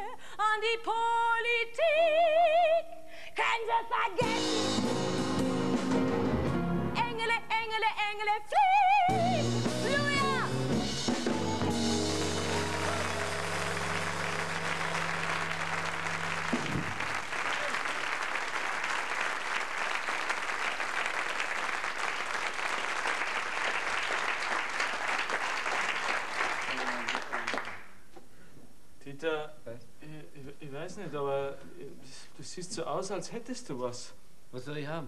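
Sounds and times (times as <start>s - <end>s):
studio audience applauding: 11.2s - 28.0s.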